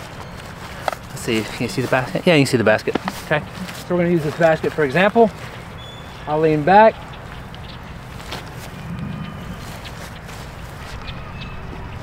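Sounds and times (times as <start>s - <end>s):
steady low rumble: 7.0s - 12.0s.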